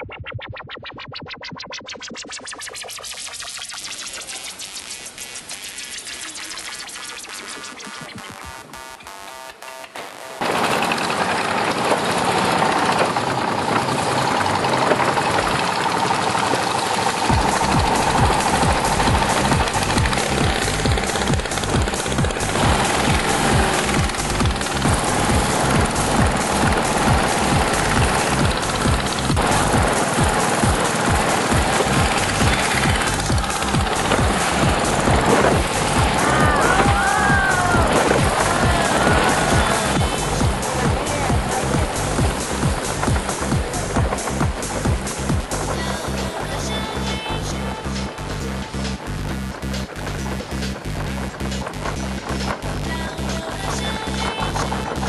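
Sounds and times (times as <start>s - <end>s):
loud boat engine running fast: 10.4s - 55.0s.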